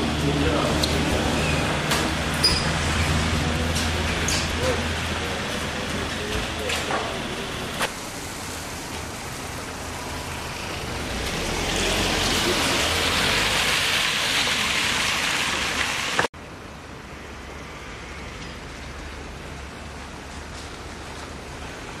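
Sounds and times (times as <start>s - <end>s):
road traffic noise: 0.0s - 22.0s
vehicle passing: 9.2s - 16.2s.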